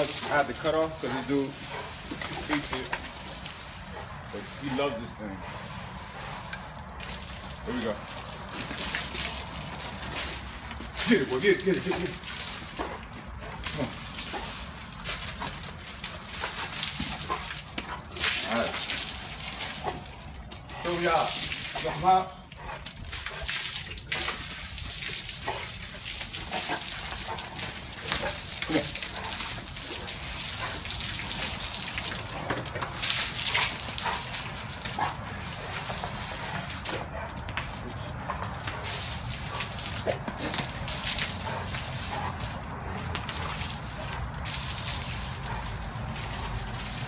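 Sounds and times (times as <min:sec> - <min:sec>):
dog snapping at water: 0:00.0 - 0:04.7, 0:06.4 - 0:47.0
hose water spraying: 0:00.0 - 0:47.0.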